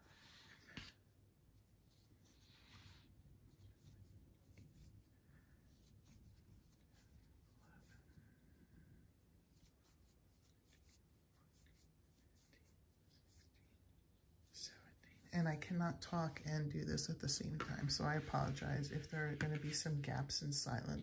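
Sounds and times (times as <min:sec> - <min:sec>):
yarn rubbing on crochet hook: 0:00.0 - 0:20.9.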